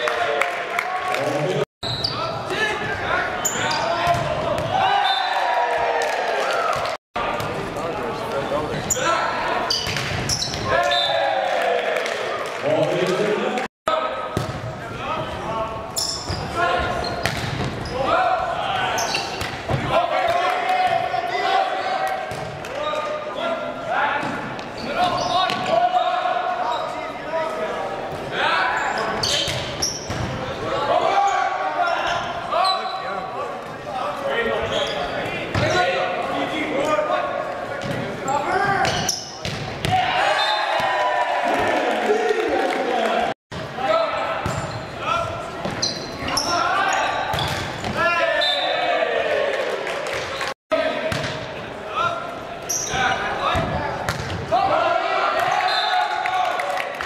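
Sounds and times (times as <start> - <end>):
people shouting in gymnasium: 2.0 - 7.0, 8.9 - 12.6, 17.8 - 27.0, 30.4 - 34.1, 38.2 - 45.5, 46.2 - 49.8, 52.8 - 57.0
volleyball slaps and thuds: 17.2 - 17.8, 38.8 - 40.0, 53.5 - 54.4.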